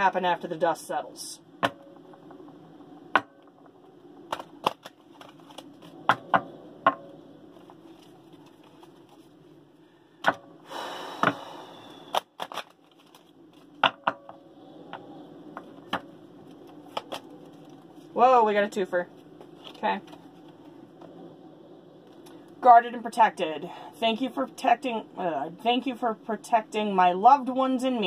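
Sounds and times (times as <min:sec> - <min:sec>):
cards snapping and clicking: 0:04.3 - 0:05.9, 0:12.1 - 0:13.7, 0:16.7 - 0:17.3
cards riffling: 0:04.3 - 0:06.0, 0:12.1 - 0:13.8, 0:16.6 - 0:17.8.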